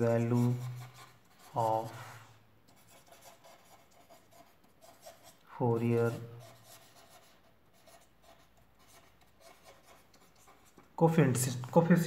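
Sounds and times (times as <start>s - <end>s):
pen scratching on paper: 0.0s - 11.8s.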